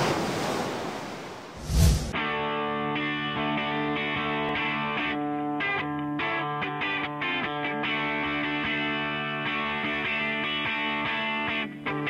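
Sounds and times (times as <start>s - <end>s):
ocean surf crashing: 0.0s - 2.2s.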